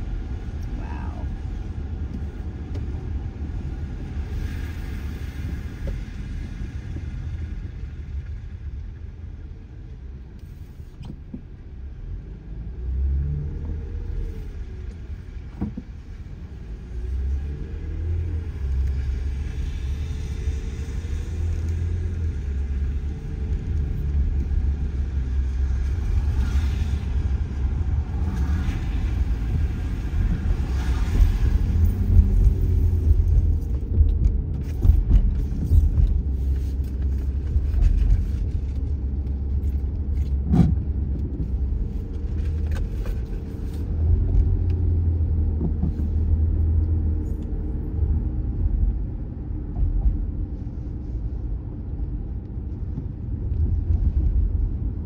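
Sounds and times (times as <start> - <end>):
engine and tyres rumbling: 0.0 - 55.0.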